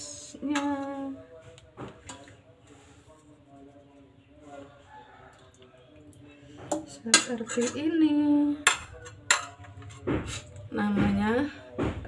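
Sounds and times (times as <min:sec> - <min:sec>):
kitchen utensils clicking: 0:07.1 - 0:07.8, 0:08.6 - 0:10.6.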